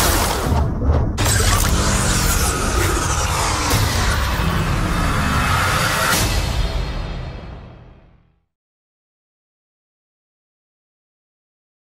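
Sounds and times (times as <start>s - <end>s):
crash and shattering effects: 0.0s - 6.8s
loud film score: 0.0s - 8.4s.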